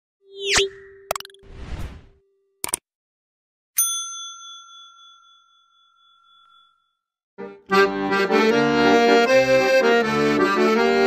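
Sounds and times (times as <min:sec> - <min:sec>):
notification bell ding: 0:03.8 - 0:06.7.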